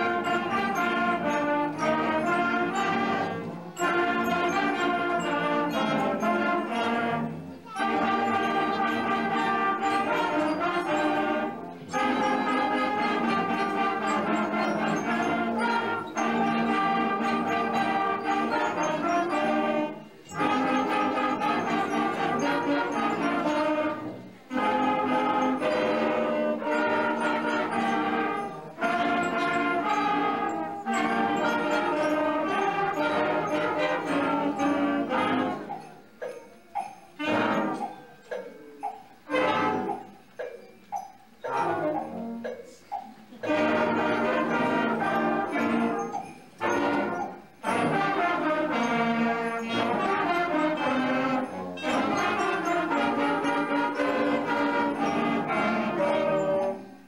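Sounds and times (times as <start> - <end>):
wind band playing held chords: 0.0 - 57.0.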